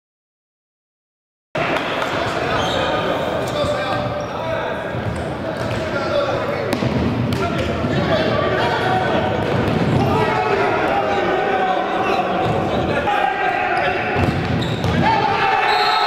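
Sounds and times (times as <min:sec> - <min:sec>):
players calling indistinctly: 0:01.6 - 0:16.0.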